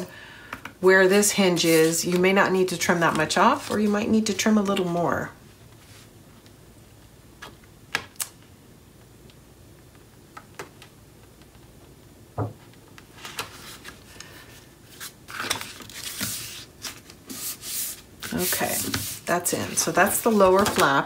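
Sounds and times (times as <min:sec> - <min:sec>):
paper rustling and rubbing: 0:01.6 - 0:02.2, 0:03.0 - 0:04.3, 0:13.2 - 0:21.0.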